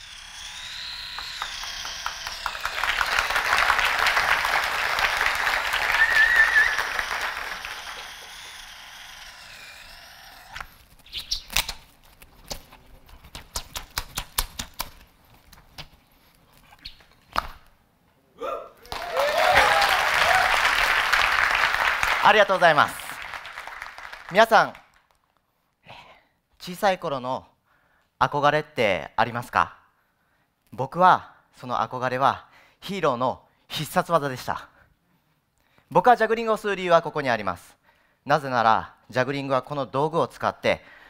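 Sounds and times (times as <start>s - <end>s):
voices cheering: 0.0s - 9.8s, 18.4s - 23.9s
audience applause: 1.2s - 9.7s, 18.8s - 25.0s.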